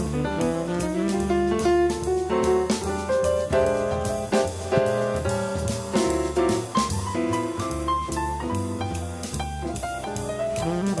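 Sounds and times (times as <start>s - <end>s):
bass: 0.0s - 11.0s
drum kit and cymbals: 0.0s - 11.0s
jazz piano chords: 0.0s - 11.0s.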